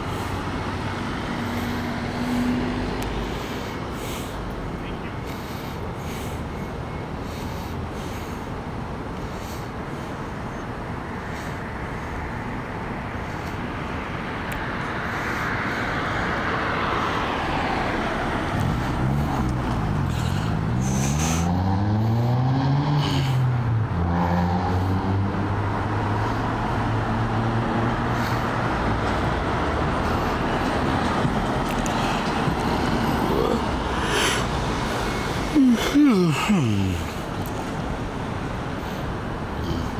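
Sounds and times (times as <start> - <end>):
car passing: 0.0 - 8.5, 9.3 - 39.9
vehicle engine hum: 0.0 - 39.9.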